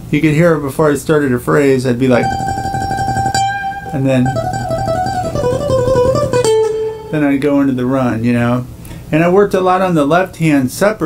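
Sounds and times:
acoustic guitar fast picking: 0:02.1 - 0:07.8.

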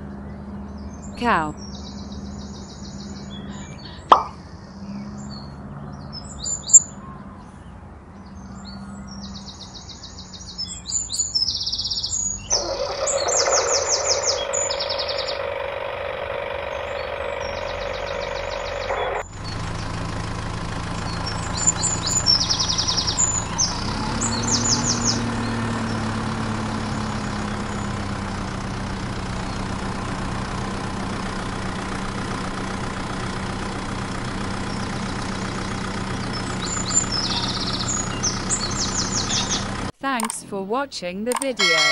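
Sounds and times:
birds chirping: 0:00.0 - 0:39.9, 0:41.3 - 0:41.9.

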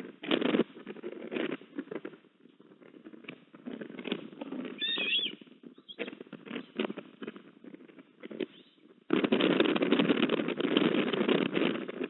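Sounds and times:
crackling rustle of nest sticks: 0:00.0 - 0:12.0
bird whistled chirp: 0:04.8 - 0:06.1.

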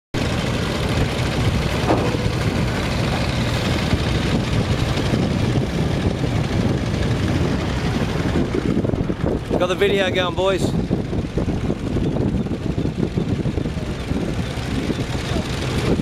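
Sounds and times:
ferry engine rumbling: 0:00.2 - 0:16.0.

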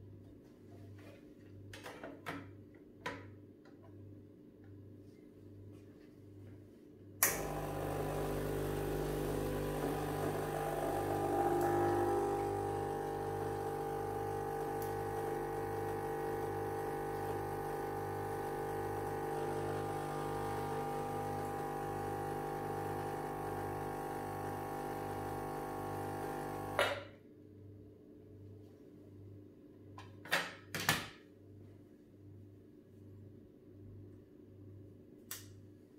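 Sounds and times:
espresso machine switch click: 0:07.2 - 0:08.4
espresso machine pump humming: 0:07.2 - 0:26.9.

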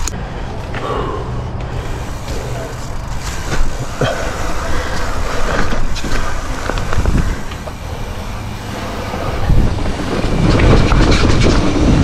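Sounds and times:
bike knocking and rattling: 0:00.0 - 0:12.0
tyres rolling over dirt: 0:00.5 - 0:12.0
wind rumble on microphone: 0:05.0 - 0:07.9, 0:08.9 - 0:12.0.

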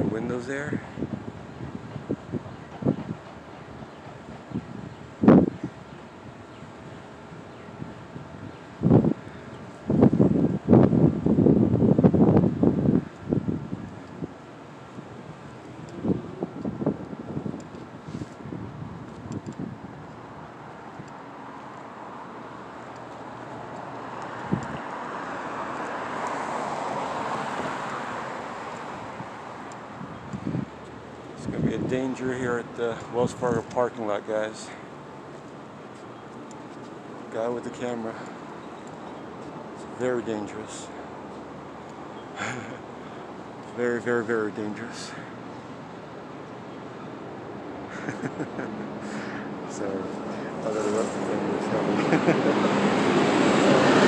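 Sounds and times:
wind buffeting microphone: 0:00.0 - 0:46.5
broad rushing noise: 0:00.0 - 0:54.0.

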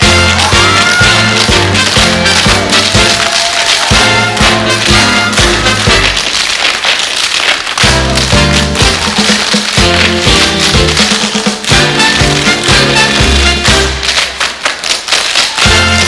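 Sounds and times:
swing band music: 0:00.0 - 0:06.5, 0:07.7 - 0:14.7, 0:15.6 - 0:16.0
tap shoes on stage floor: 0:00.0 - 0:16.0.

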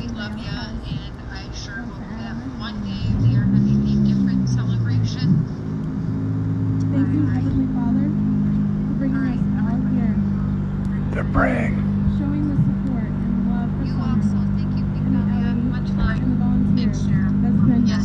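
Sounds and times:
vehicle engine running: 0:00.0 - 0:18.0
distant speech from pa speaker: 0:06.9 - 0:18.0.

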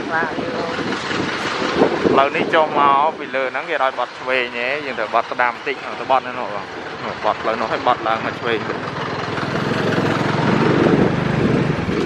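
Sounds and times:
wind on microphone: 0:00.0 - 0:03.6, 0:09.3 - 0:12.0
motorbike engine: 0:00.0 - 0:12.0
road noise: 0:00.0 - 0:12.0.

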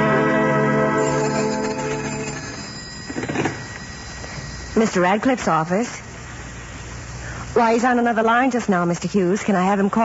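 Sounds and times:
orchestral music: 0:00.0 - 0:02.2
telephone bell ringing: 0:00.8 - 0:05.8.

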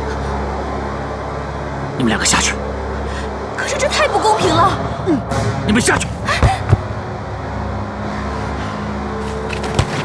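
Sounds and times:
low rumbling drone: 0:00.0 - 0:09.8.

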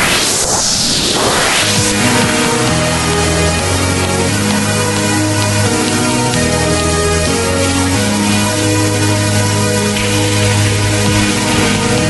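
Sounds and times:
sweeping noise whoosh: 0:00.0 - 0:06.1
synth and bass beat: 0:01.6 - 0:12.0.

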